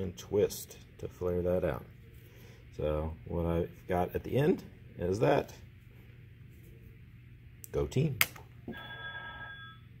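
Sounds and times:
bell-like ringing tone: 8.7 - 10.0.

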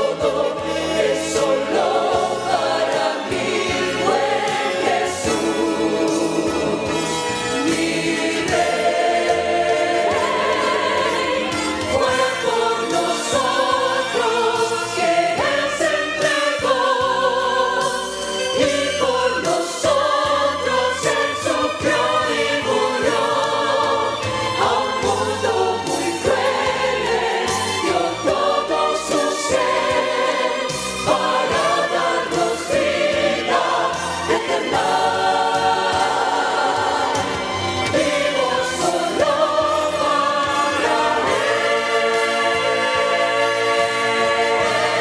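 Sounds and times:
mixed choir singing: 0.0 - 45.0.

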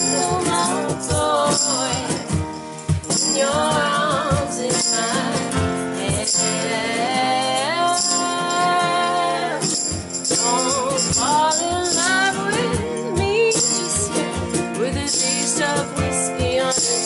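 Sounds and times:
keyboard: 0.0 - 17.0
women singing: 0.0 - 17.0.

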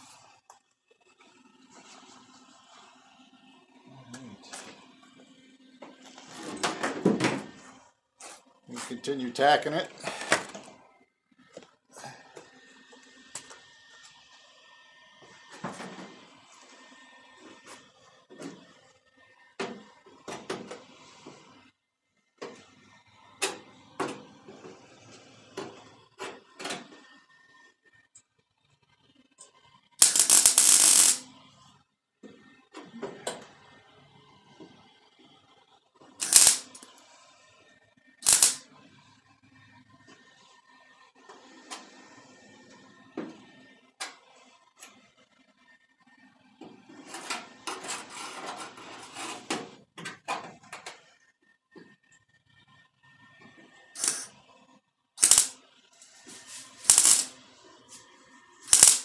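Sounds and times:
welder crackling: 30.0 - 31.2, 36.2 - 36.8, 38.2 - 38.6, 54.0 - 54.3, 55.2 - 55.6, 56.8 - 57.3, 58.6 - 59.0.

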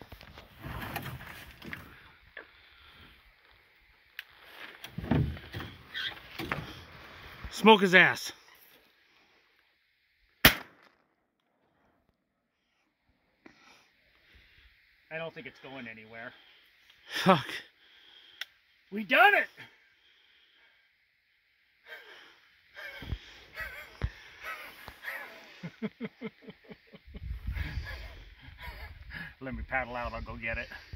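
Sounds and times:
shotgun shot: 10.4 - 11.0
man exclaiming: 19.0 - 19.6
breathy laughter: 21.9 - 29.4.

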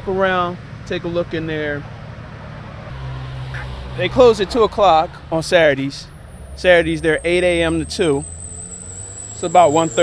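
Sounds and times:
car engine hum: 0.0 - 10.0.

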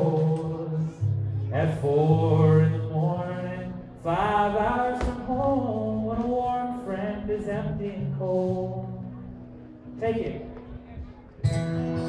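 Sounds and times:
man singing: 0.0 - 10.6
backing voices: 0.0 - 12.0
live country-folk band: 0.0 - 12.0.

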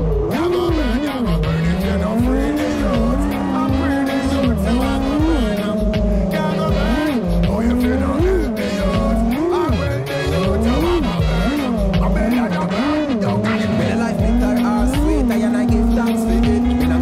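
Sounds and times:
background music with beat: 0.0 - 17.0
quadcopter motors whining: 0.0 - 17.0.

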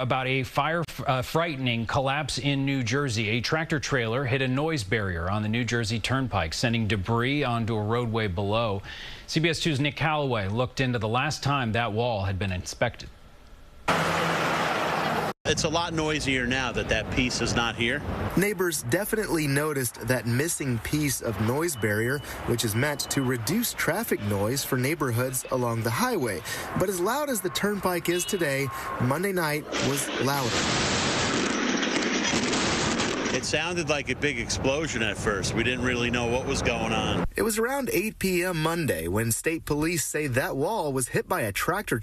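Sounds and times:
highway traffic noise: 13.2 - 37.4
concrete wall crashing down: 30.4 - 33.6.

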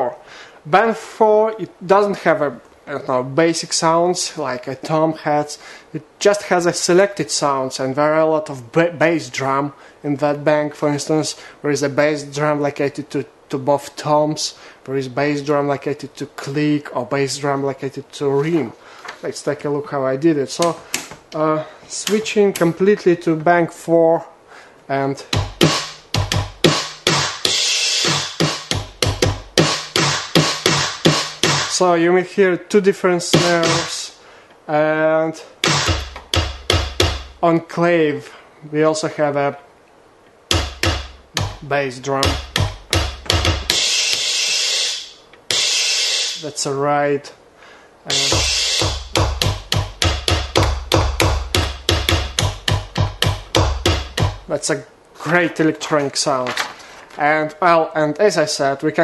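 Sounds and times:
drum machine bass drum hits: 25.3 - 31.8, 33.3 - 34.0, 35.6 - 37.4, 40.5 - 44.3, 45.5 - 46.0, 48.1 - 54.5
drum machine snare hits: 25.3 - 31.8, 33.3 - 34.0, 35.6 - 37.4, 40.5 - 44.8, 45.5 - 46.4, 48.1 - 54.5.

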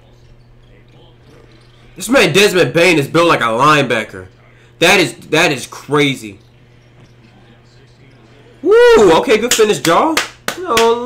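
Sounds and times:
faint basketball broadcast: 0.0 - 11.0
steady low hum: 0.0 - 11.0.

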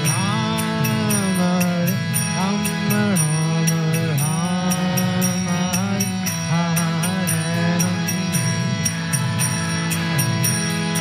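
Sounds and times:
man singing a chant: 0.0 - 8.6
hand cymbals ringing: 0.0 - 11.0
harmonium chords: 0.0 - 11.0.

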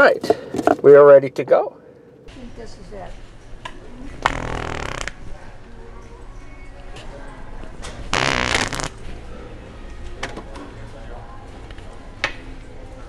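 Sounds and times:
store background noise: 0.0 - 13.0
loud raspy fart: 4.2 - 5.3, 8.0 - 9.1.

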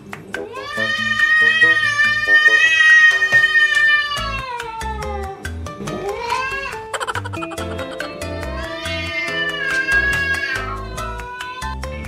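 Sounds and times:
background music with steady beat: 0.0 - 12.0
angry cat yowling: 8.3 - 11.8.

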